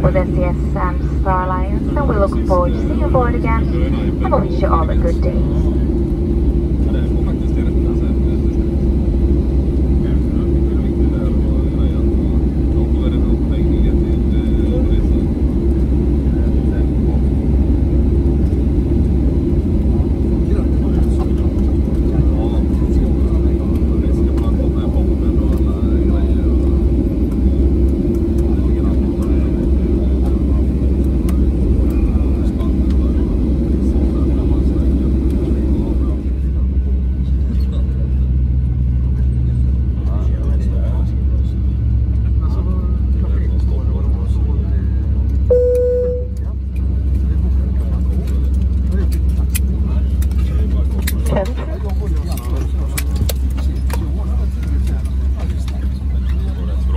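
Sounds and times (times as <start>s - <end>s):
constant cabin hum: 0.0s - 56.9s
jet engines idling rumble: 0.0s - 56.9s.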